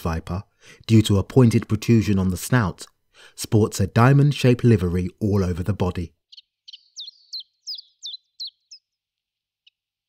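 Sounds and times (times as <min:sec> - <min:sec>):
small bird singing high notes: 0:06.3 - 0:09.0.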